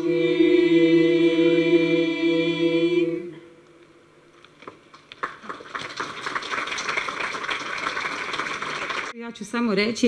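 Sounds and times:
audience applauding: 4.9s - 9.1s
woman speaking into a microphone: 9.1s - 10.0s.

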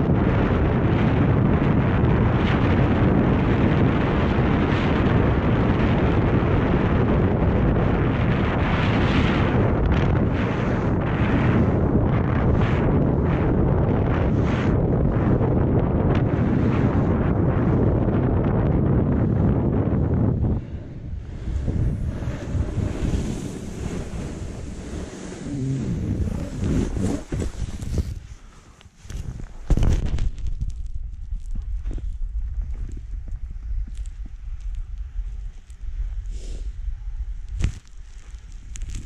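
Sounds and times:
wind buffeting microphone: 0.0s - 39.0s
skis hissing over snow: 21.4s - 28.8s, 36.3s - 36.8s.

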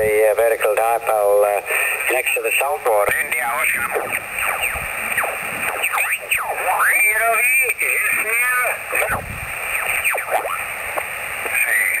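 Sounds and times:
garbled radio voices: 0.0s - 12.0s
radio whistles sweeping in pitch: 4.4s - 6.5s.

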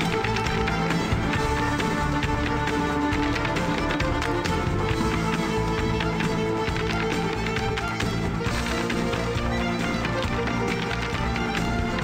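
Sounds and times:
dance shoes clicking on hardwood: 0.0s - 12.0s
upbeat dance music: 0.0s - 12.0s.

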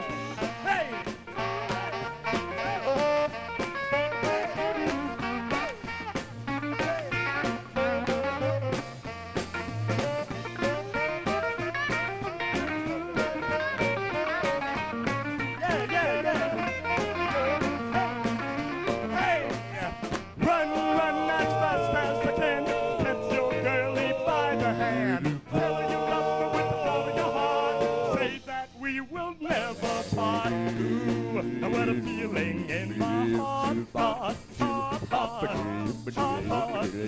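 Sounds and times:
electric guitar: 0.0s - 27.0s
electric bass: 0.0s - 28.4s, 29.6s - 37.0s
drums with steady beat: 0.0s - 37.0s
man singing lead: 3.8s - 6.0s, 15.5s - 37.0s.

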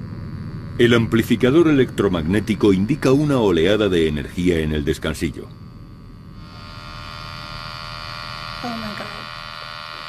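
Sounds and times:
steady electrical buzz: 0.0s - 10.0s.

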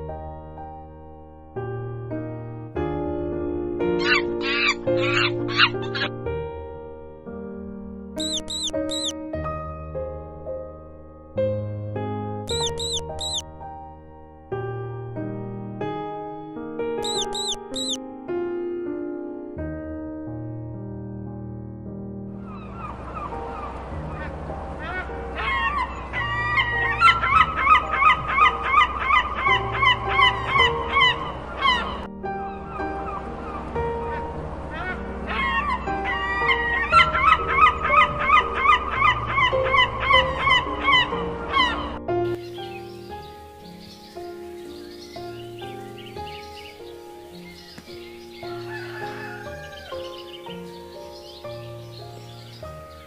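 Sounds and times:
background music with held notes: 0.0s - 53.0s
short high squeaks: 8.2s - 9.1s, 12.5s - 13.4s, 17.0s - 18.0s
short honking bird calls: 8.2s - 9.1s, 12.5s - 13.4s, 17.0s - 18.0s
held keyboard chords: 8.2s - 9.7s, 12.5s - 13.6s, 16.8s - 18.3s.

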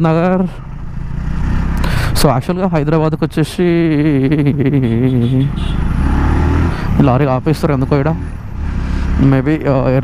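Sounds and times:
motorcycle engine: 0.0s - 10.0s
traffic rumble: 0.0s - 10.0s.

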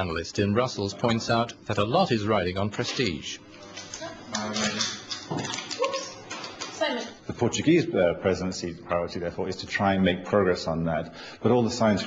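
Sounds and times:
man speaking: 0.0s - 3.5s, 7.2s - 12.0s.

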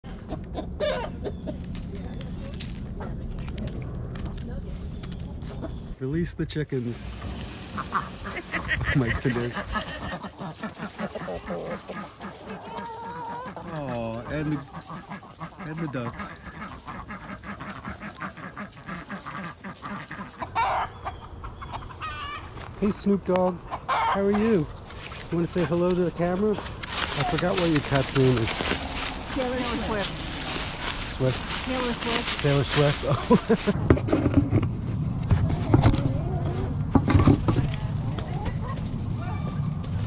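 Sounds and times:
chickens and ducks calling: 0.0s - 3.5s, 4.8s - 34.5s
hens clucking: 0.0s - 40.0s
low steady rumble: 0.0s - 40.0s.

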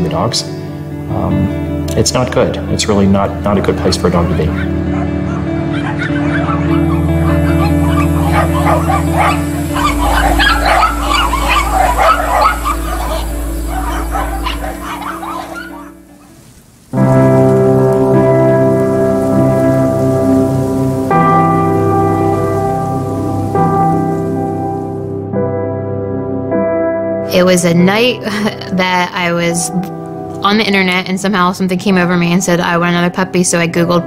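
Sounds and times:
music with sustained chords: 0.0s - 34.0s
many dogs barking: 4.2s - 16.5s.

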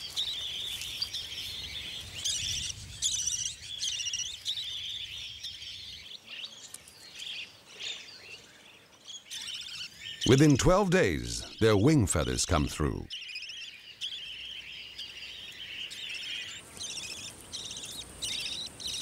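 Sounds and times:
budgerigars chirping: 13.1s - 19.0s.

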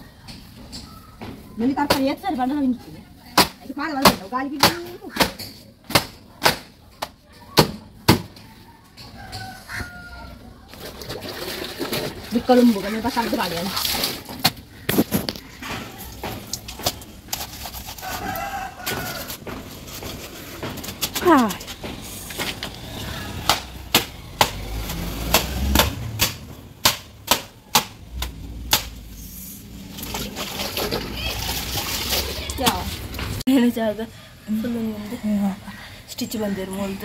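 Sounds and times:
chicken calling: 8.6s - 10.6s
wet clothes slapping on stone: 23.4s - 29.0s.

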